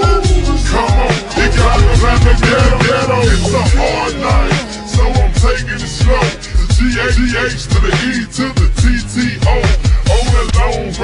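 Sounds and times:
slowed rapping over beat: 0.0s - 11.0s
deep bass hits and drums: 1.3s - 7.8s.

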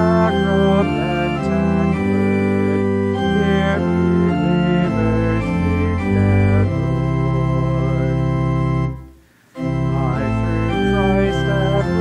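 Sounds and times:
organ playing hymn chords: 0.0s - 12.0s.

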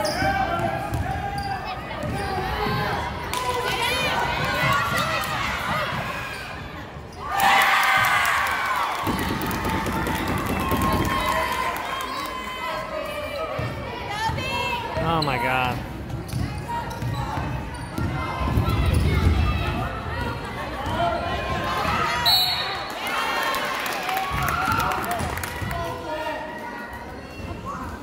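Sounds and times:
chatter and shouts: 0.0s - 28.0s.

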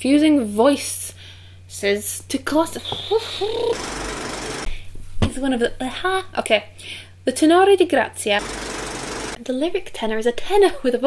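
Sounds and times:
woman laughing: 2.9s - 3.8s.

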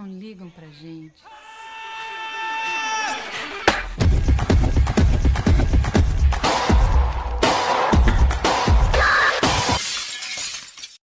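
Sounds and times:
dance music: 3.3s - 9.8s.

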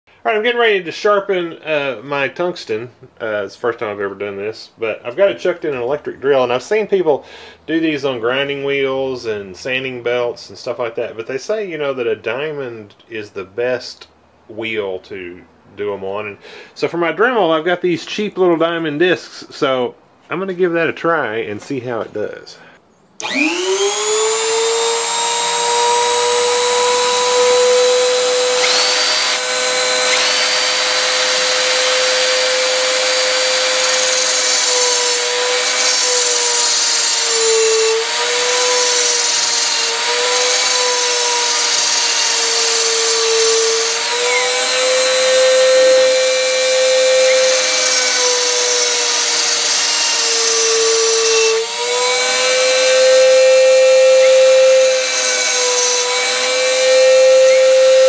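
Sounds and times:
rotary tool whining: 23.2s - 58.0s.

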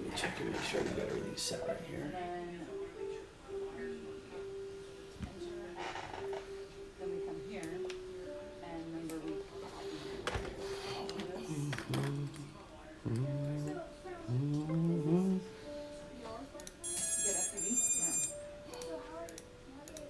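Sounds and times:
song with singing voice: 11.5s - 15.6s.

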